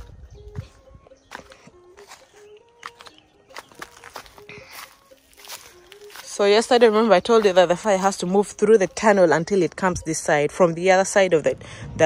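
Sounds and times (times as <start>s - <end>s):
footsteps on dry ground: 0.0s - 10.2s
faint distant music: 0.0s - 12.0s.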